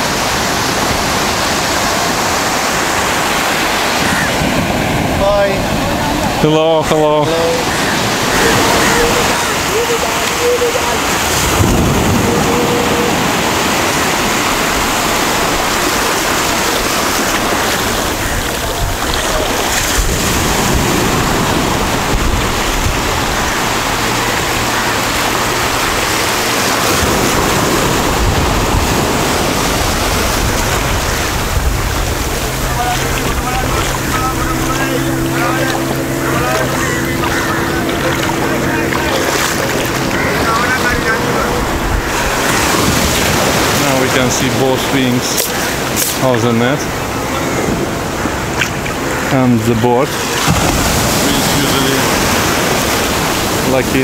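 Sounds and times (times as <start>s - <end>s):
wind on microphone: 0.0s - 6.5s, 7.6s - 46.2s
low engine hum: 0.0s - 46.2s
surf breaking on beach: 0.0s - 54.0s.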